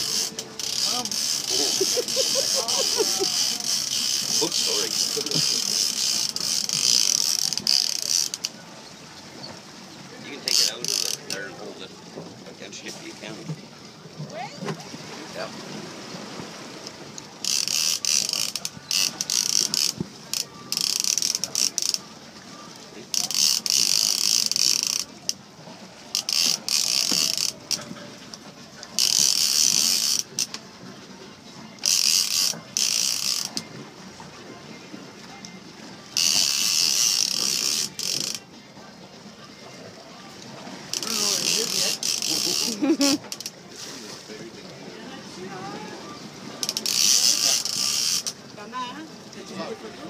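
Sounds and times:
fishing reel clicker buzzing: 0:00.0 - 0:08.6, 0:10.5 - 0:11.4, 0:17.4 - 0:22.0, 0:23.1 - 0:25.4, 0:26.1 - 0:27.9, 0:29.0 - 0:30.6, 0:31.8 - 0:33.7, 0:36.1 - 0:38.4, 0:40.9 - 0:43.6, 0:46.6 - 0:48.4.

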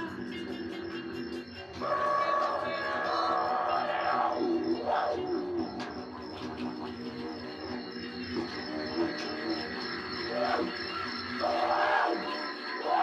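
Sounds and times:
didgeridoo drone: 0:01.6 - 0:13.0.

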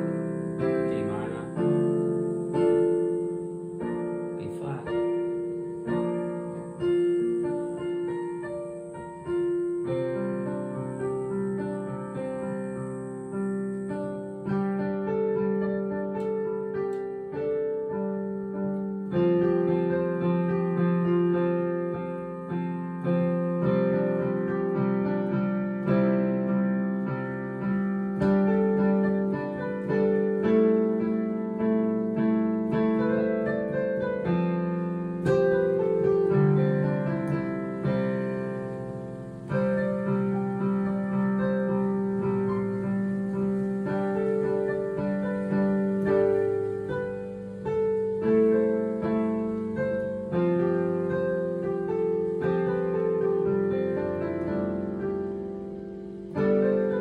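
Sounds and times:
digital piano chords and melody: 0:00.0 - 0:57.0.

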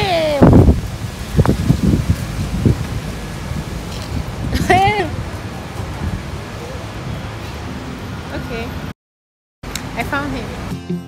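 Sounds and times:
wind buffeting microphone: 0:00.0 - 0:07.3.

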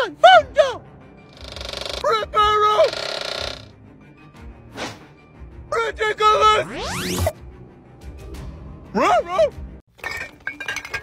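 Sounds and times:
whoosh: 0:06.5 - 0:07.4.

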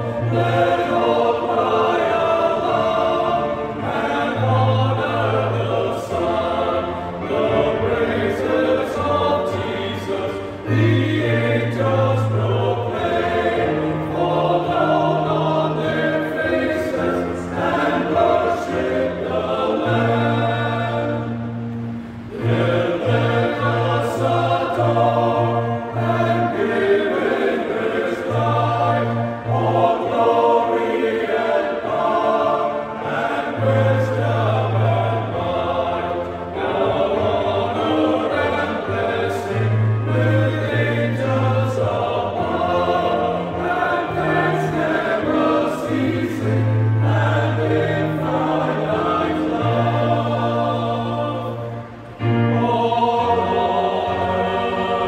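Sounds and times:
men's choir singing a hymn: 0:00.0 - 0:55.0.

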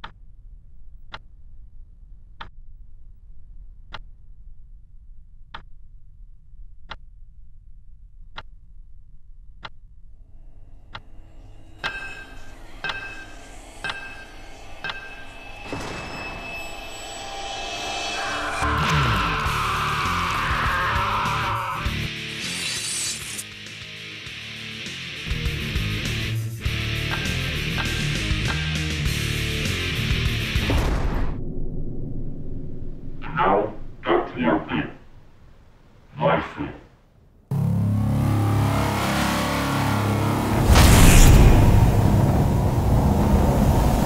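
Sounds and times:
low hum: 0:00.0 - 0:21.2, 0:29.1 - 0:36.0, 0:37.5 - 0:44.0
soundtrack music with crashes: 0:10.9 - 0:34.8, 0:37.5 - 0:44.0.

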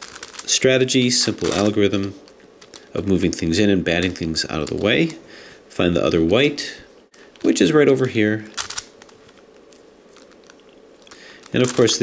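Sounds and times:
plastic puzzle pieces clicking: 0:08.6 - 0:09.4.

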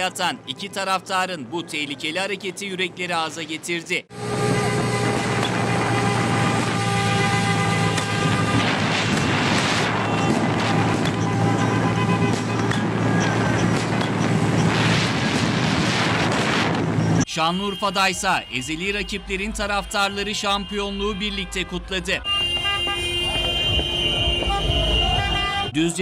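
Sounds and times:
vehicle engine drone: 0:04.1 - 0:17.3
wind noise on microphone: 0:04.6 - 0:17.2.

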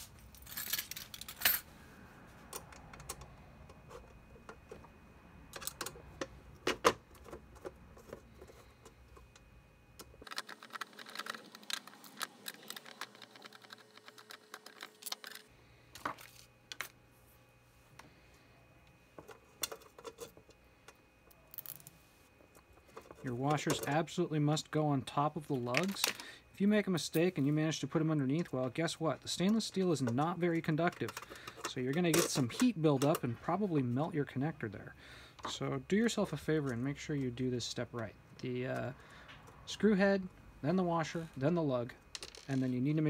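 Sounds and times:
small metal parts clinking: 0:00.3 - 0:01.7, 0:10.2 - 0:17.0, 0:42.1 - 0:42.7.

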